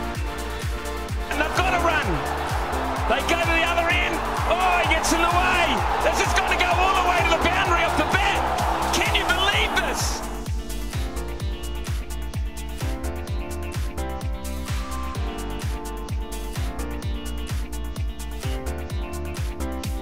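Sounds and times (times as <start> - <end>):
music with thudding beat: 0.1 - 20.0
stadium crowd cheering and shouting: 0.4 - 10.5.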